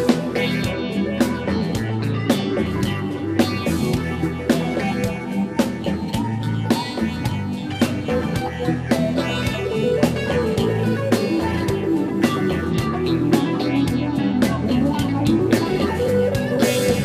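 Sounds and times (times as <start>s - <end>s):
bass guitar: 0.0s - 17.0s
drum kit: 0.0s - 17.0s
electric guitar: 0.0s - 17.0s.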